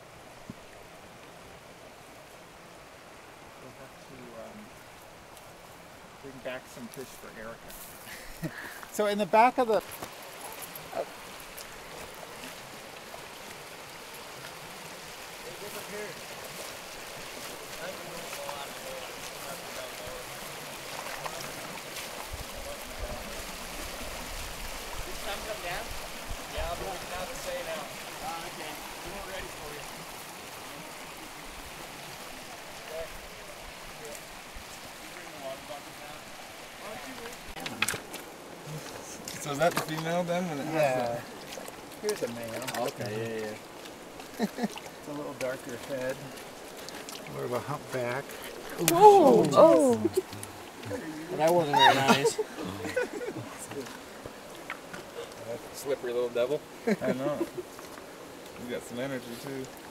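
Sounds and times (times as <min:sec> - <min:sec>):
rocky creek flowing: 0:00.0 - 0:59.9.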